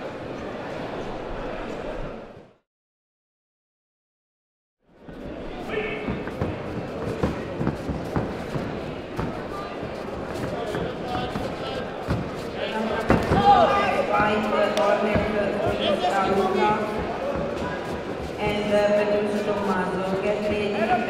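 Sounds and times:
hubbub of voices: 0.0 - 2.6, 4.9 - 21.0
people shouting: 12.9 - 14.3.

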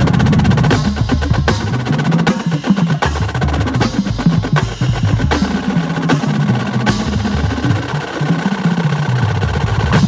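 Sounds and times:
bass drum notes: 0.0 - 8.4
snare drum rolls: 0.0 - 10.0.

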